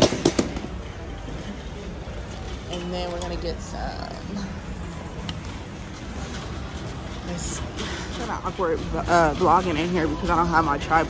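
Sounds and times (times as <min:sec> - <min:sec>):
low steady store hum: 0:00.0 - 0:11.0.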